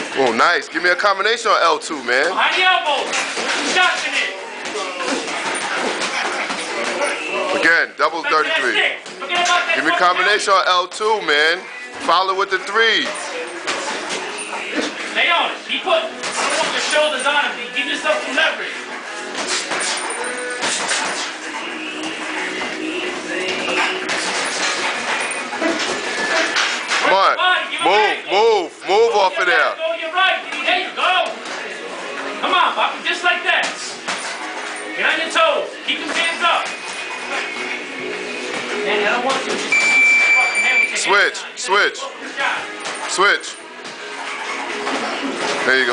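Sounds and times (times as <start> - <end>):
background music: 0.0 - 45.9
voices in gym: 0.0 - 45.9
high electronic timer beep: 39.7 - 41.0.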